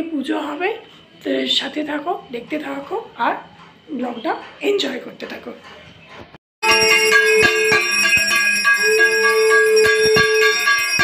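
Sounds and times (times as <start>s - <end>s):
brass hand bell ringing: 6.6s - 11.0s.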